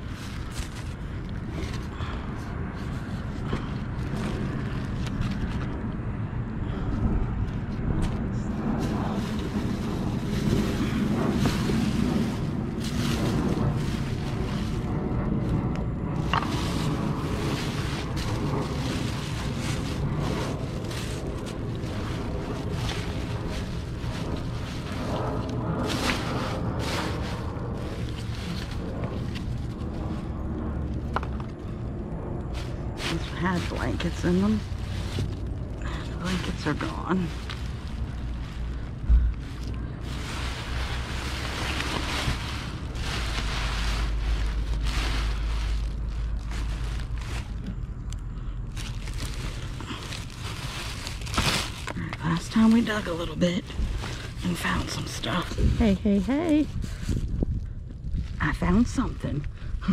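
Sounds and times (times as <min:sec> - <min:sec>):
plastic bags and cardboard rustling: 0:00.0 - 0:05.8, 0:08.1 - 0:59.5
steady low rumble: 0:00.0 - 0:59.9.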